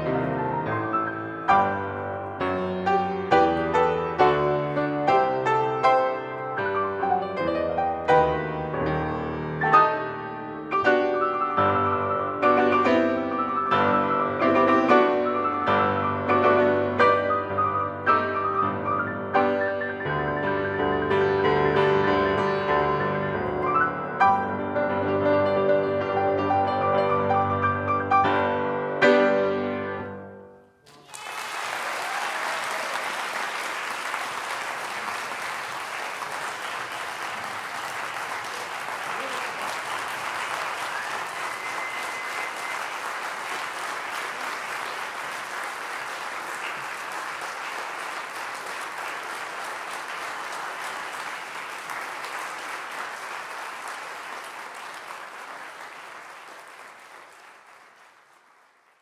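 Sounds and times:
audience applauding: 30.8 - 59.0.

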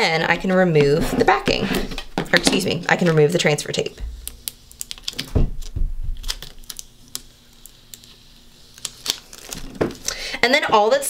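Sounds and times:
tape peeling crackle: 4.0 - 10.2.

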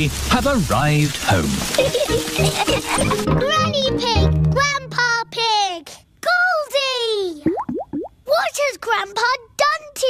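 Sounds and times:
rising plop sound effects: 7.4 - 8.1.

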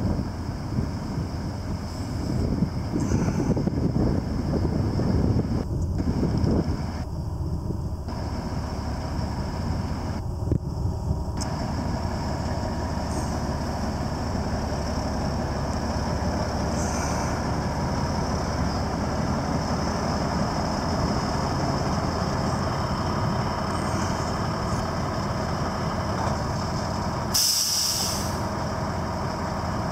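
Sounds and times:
truck diesel engine running: 0.0 - 29.9
air brake hiss: 3.0 - 3.6, 16.7 - 17.4, 27.3 - 28.5.

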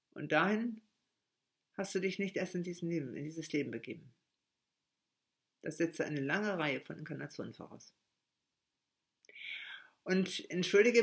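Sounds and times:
woman's intake of breath: 9.3 - 10.0.

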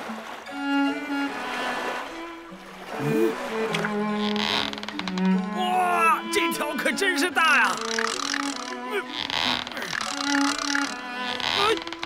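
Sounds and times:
background music with held notes: 0.0 - 12.0
fishing reel ratcheting whir: 7.7 - 11.0.

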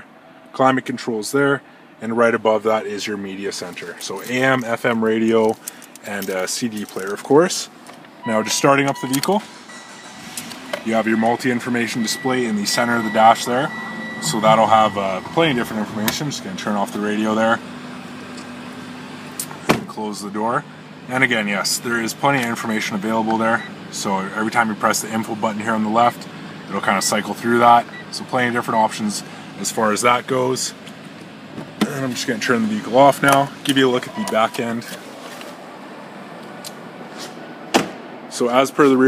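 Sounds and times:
car engine idling: 7.7 - 38.6
car door shutting: 8.4 - 16.5, 19.4 - 20.0, 37.2 - 38.1.

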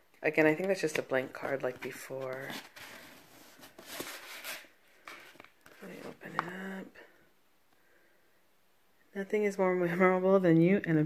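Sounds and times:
cardboard and paper rustling: 0.5 - 6.6.

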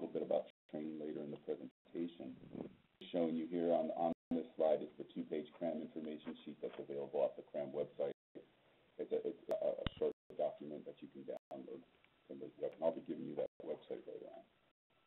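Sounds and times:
man lecturing over telephone audio: 0.0 - 2.4, 3.0 - 14.5.

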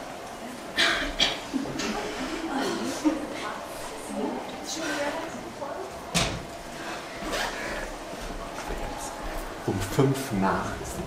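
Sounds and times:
murmur of students: 0.0 - 11.0.

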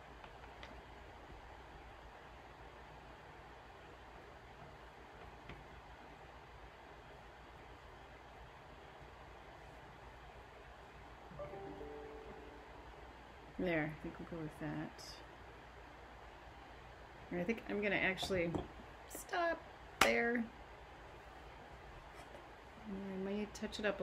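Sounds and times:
low hum with overtones: 11.3 - 15.3.

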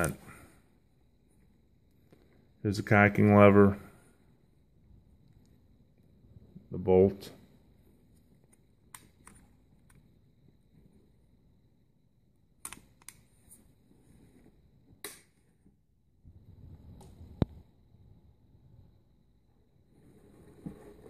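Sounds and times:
air pistol clicks: 12.6 - 13.2.

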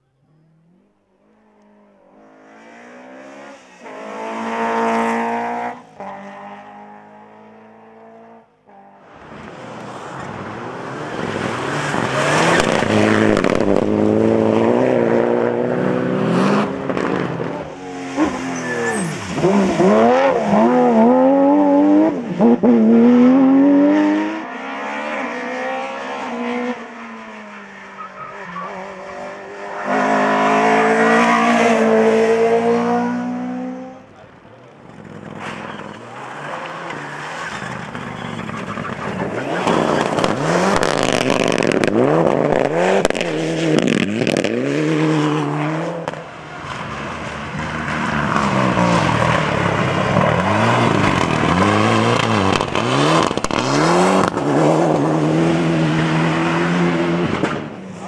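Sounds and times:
car accelerating: 0.2 - 58.0
rally car engines revving: 0.2 - 58.0.

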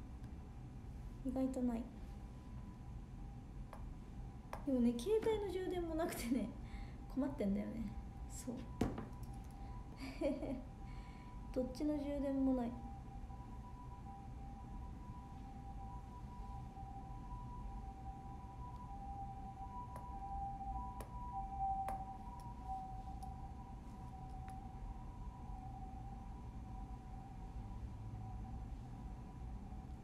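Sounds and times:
low room rumble: 0.0 - 30.0
two-tone whine: 0.0 - 30.0.

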